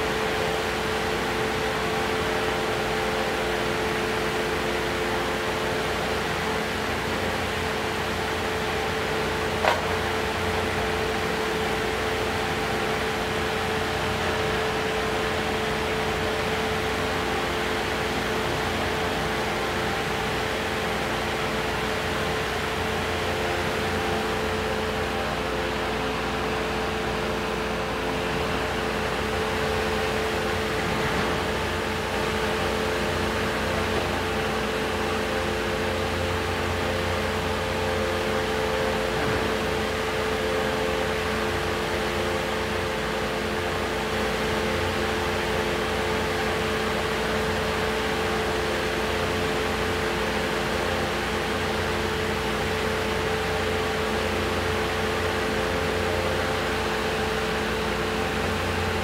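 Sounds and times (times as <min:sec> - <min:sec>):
demolition machinery running: 0:00.0 - 0:59.0.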